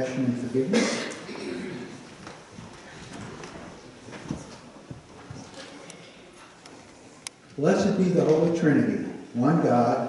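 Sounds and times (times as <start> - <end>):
people shuffling and rustling: 0.0 - 9.9.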